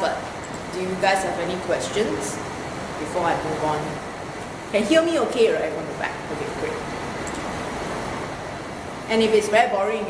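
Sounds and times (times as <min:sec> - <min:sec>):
low room rumble hum: 0:00.0 - 0:10.0.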